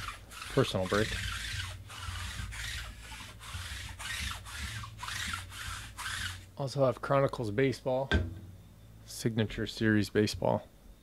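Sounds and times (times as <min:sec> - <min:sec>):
scratchy rubbing strokes: 0:00.0 - 0:06.5
steady low hum: 0:00.0 - 0:11.0.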